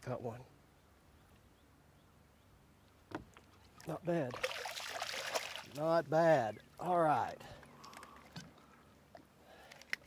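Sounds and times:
faint low background noise: 0:00.0 - 0:09.6.

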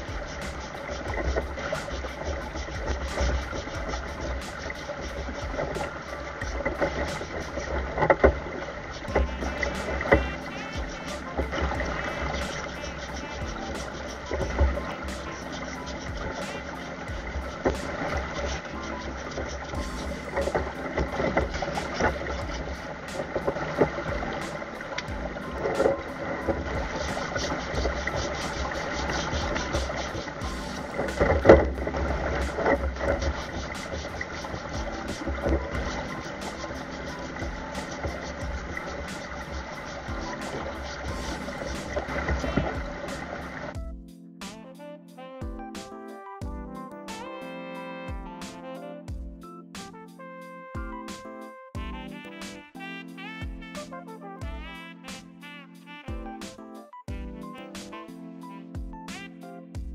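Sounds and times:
pump engine running: 0:00.0 - 0:43.7
water rushing through sluice: 0:00.0 - 0:43.8.

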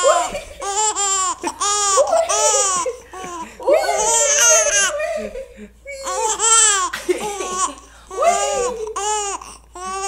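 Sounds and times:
baby laughing: 0:00.0 - 0:05.4, 0:06.0 - 0:10.0.

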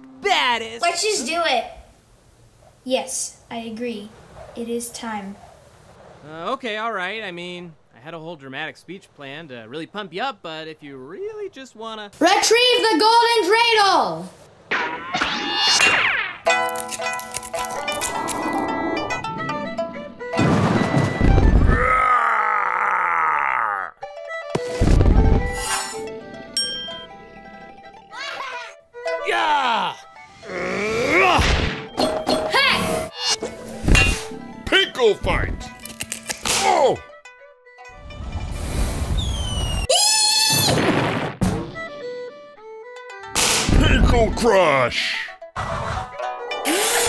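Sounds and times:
loud cartoon hit: 0:20.4 - 0:21.8, 0:31.2 - 0:31.9, 0:40.5 - 0:41.8, 0:43.4 - 0:44.2
cartoon monster cry: 0:21.7 - 0:24.0
high-pitched squeal: 0:38.4 - 0:40.0
falling whistle: 0:39.0 - 0:40.7.

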